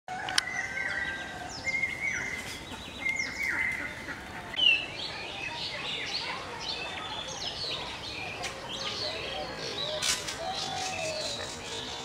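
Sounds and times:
wild birds chirping and whistling: 0.1s - 12.0s.

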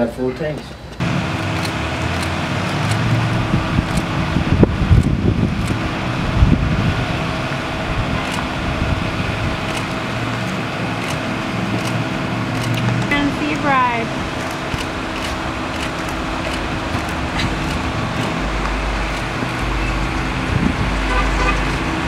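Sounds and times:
steady mechanical hum: 0.0s - 22.0s.

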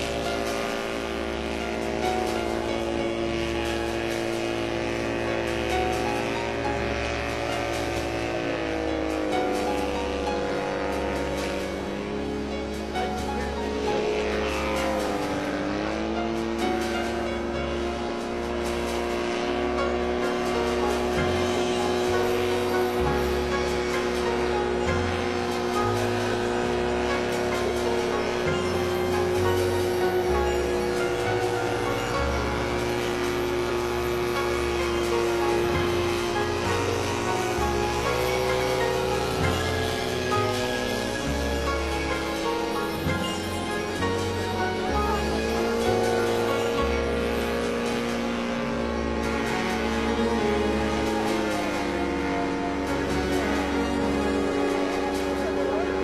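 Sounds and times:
autogyro engine droning overhead: 0.0s - 56.0s
deep bass note: 0.0s - 56.0s
slow sustained chords: 0.0s - 56.0s.

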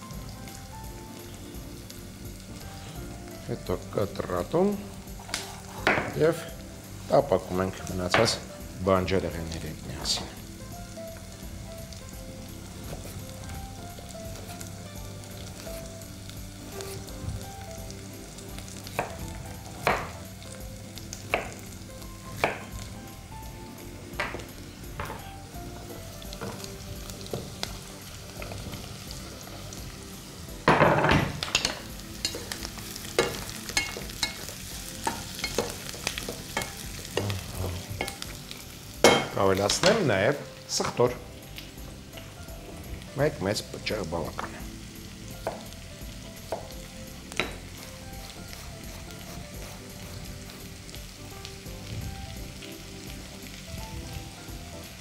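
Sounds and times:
food sizzling in pot: 0.0s - 55.0s.

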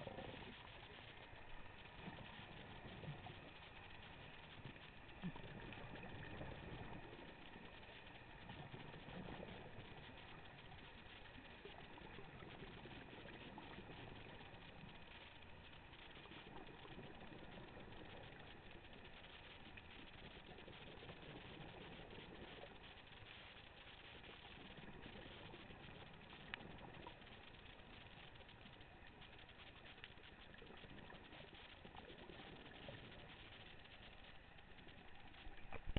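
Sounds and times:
muffled underwater noise: 0.0s - 35.9s.

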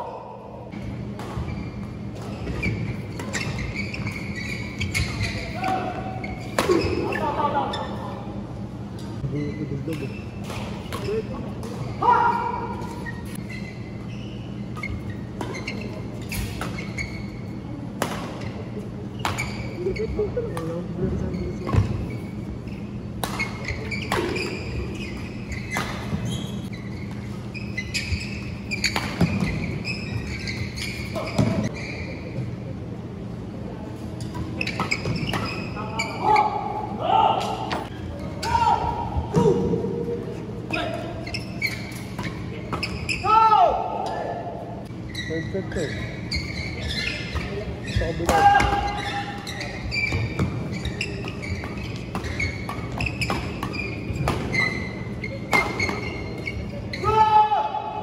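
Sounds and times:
players' voices and shouts: 11.1s - 13.0s, 35.7s - 41.2s, 43.1s - 44.8s, 56.9s - 58.0s.

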